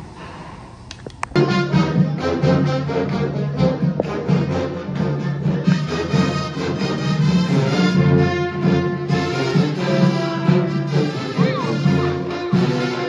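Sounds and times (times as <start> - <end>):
marching band playing: 1.4 - 13.0.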